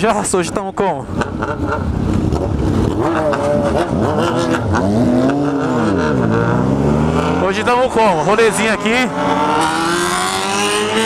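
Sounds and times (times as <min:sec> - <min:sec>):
motorcycle engine accelerating: 0:01.1 - 0:11.0.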